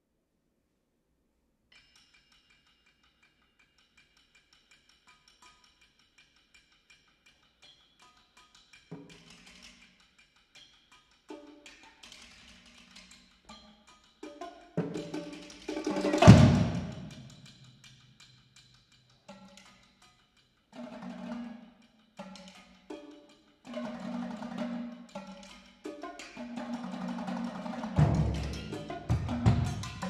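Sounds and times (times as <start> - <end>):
lower-pitched percussion strokes: 11.3 - 19.8, 20.8 - 30.0
fast taps on pitched percussion: 22.2 - 30.0.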